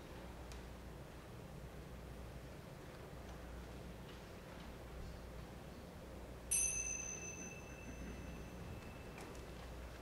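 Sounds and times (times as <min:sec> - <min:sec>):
small hand cymbals ringing: 0:06.5 - 0:09.6.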